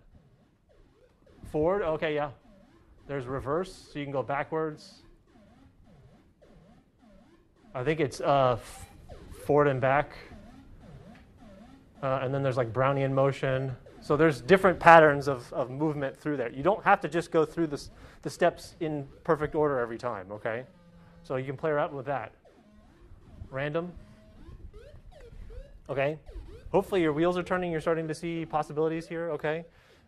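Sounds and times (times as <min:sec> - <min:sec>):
synthesizer notes sliding in pitch: 0:00.1 - 0:29.2.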